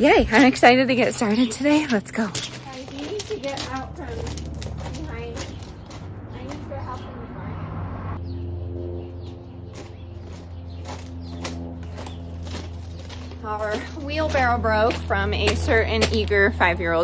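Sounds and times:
distant voices: 0:00.0 - 0:17.0
steady low hum: 0:08.0 - 0:17.0.

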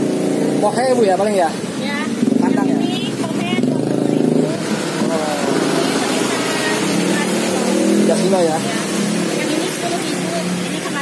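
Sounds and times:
traffic engine hum: 0:00.0 - 0:11.0.

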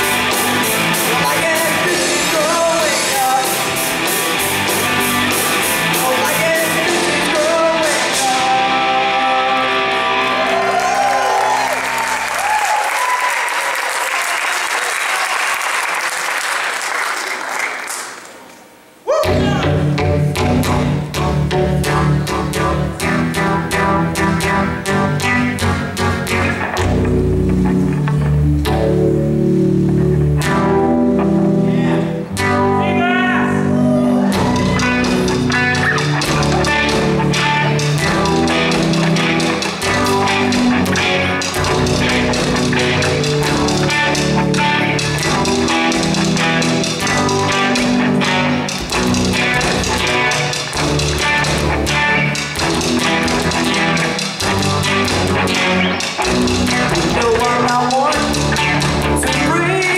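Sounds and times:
drum kit: 0:00.0 - 0:11.6, 0:19.2 - 0:32.6, 0:34.2 - 0:59.9
bass guitar: 0:00.0 - 0:12.8, 0:19.2 - 0:59.9
electric guitars: 0:00.0 - 0:13.2, 0:19.2 - 0:59.9
rock band playing: 0:00.0 - 0:13.2, 0:19.2 - 0:59.9.

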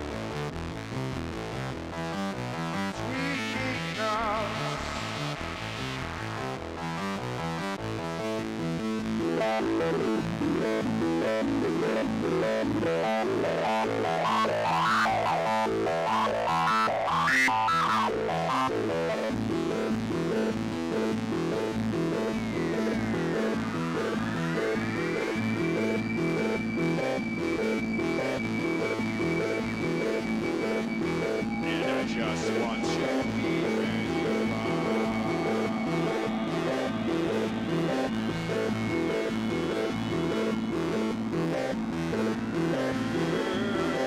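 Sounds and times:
dark electronic synthesizer music: 0:00.0 - 0:44.0.

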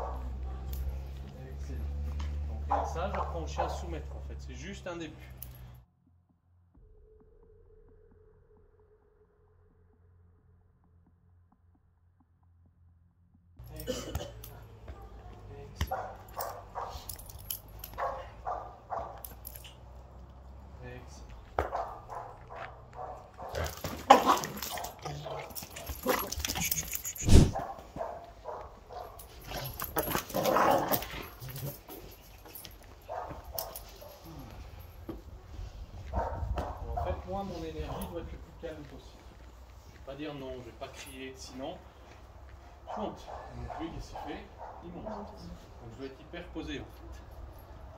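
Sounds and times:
dog barking: 0:00.0 - 0:01.2, 0:02.6 - 0:04.3, 0:14.6 - 0:19.6, 0:21.6 - 0:26.8, 0:27.4 - 0:31.8, 0:33.0 - 0:34.6, 0:36.0 - 0:38.1, 0:42.8 - 0:45.6.

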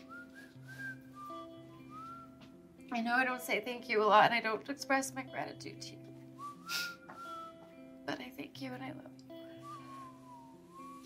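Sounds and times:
whistled melody: 0:00.0 - 0:02.6, 0:06.4 - 0:07.8, 0:09.4 - 0:11.0.

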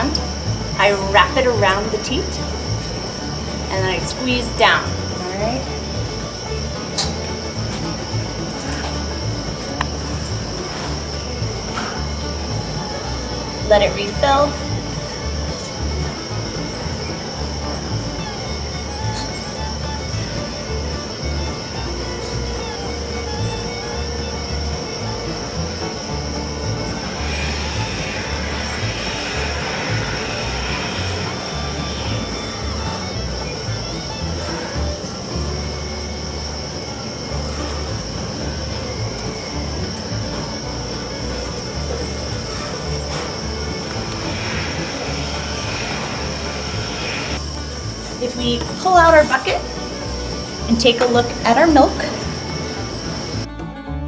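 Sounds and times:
music: 0:00.0 - 0:54.0.

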